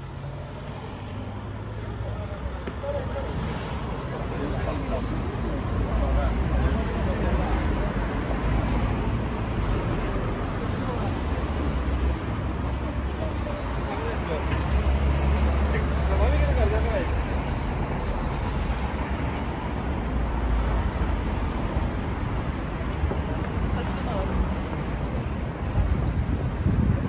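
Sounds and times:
road traffic rumble: 0:00.0 - 0:27.0
passers-by talking: 0:00.1 - 0:27.0.

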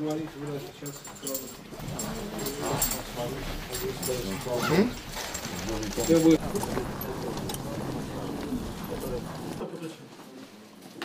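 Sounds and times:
men talking at once: 0:00.0 - 0:10.5
clicks and shuffling: 0:00.1 - 0:09.6.

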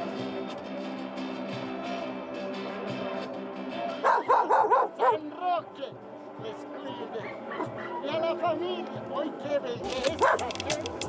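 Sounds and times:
dog barking: 0:04.0 - 0:05.2, 0:07.2 - 0:08.1, 0:10.1 - 0:10.6
dog yelping: 0:04.0 - 0:05.2, 0:07.2 - 0:08.1, 0:10.1 - 0:10.5.

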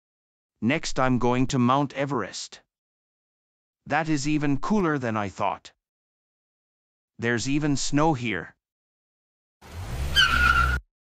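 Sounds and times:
tyre squeal: 0:10.0 - 0:10.9.

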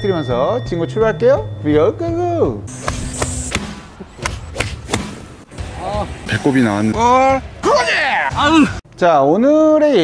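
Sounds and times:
golf clubs striking balls: 0:02.7 - 0:05.6.

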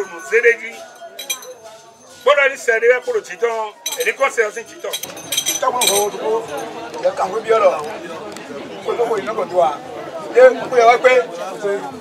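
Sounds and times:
glass bottles clinking: 0:00.0 - 0:06.8
man talking: 0:02.2 - 0:07.8.

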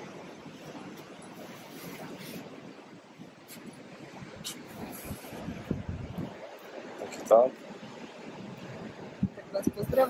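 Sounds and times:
sea surf: 0:00.0 - 0:10.0
wind rumbling on microphone: 0:00.0 - 0:10.0.

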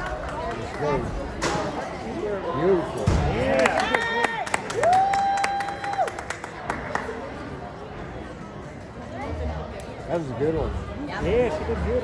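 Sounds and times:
spectators clapping: 0:00.0 - 0:01.0, 0:03.5 - 0:07.2.

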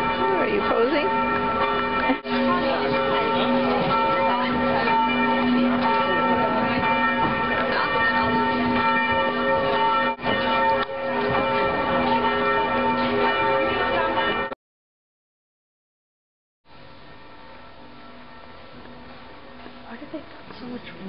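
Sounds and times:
murmur of people: 0:00.0 - 0:09.1
church bells pealing: 0:00.0 - 0:14.6, 0:16.7 - 0:20.5.

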